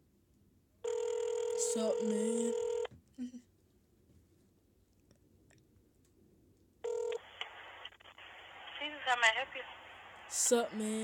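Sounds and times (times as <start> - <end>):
telephone ringing tone: 0.8 - 2.9, 6.8 - 7.4.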